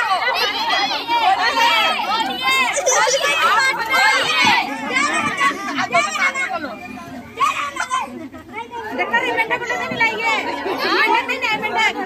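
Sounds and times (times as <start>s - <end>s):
women and children chattering: 0.0s - 12.0s.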